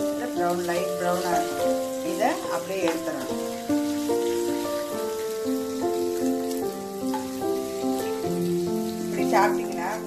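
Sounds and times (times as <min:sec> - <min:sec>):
background music of held notes: 0:00.0 - 0:10.0
food frying in oil: 0:00.0 - 0:10.0.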